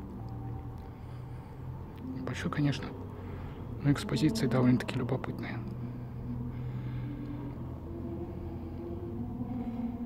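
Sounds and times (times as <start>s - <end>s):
faint steady tones: 0.0s - 10.0s
steady low hum: 0.0s - 10.0s.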